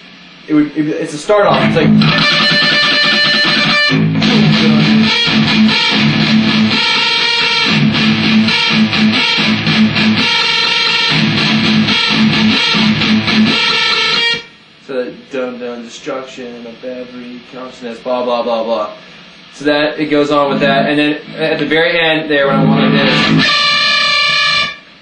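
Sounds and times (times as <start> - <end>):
electric guitar chugging riff: 1.3 - 14.6, 20.5 - 21.7, 22.4 - 25.0.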